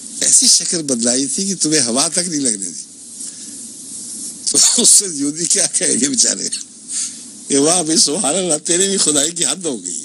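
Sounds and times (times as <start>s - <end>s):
faint low hum: 0.0s - 10.0s
recording hiss: 0.0s - 10.0s
man talking: 0.2s - 2.9s, 4.4s - 6.7s, 7.5s - 10.0s.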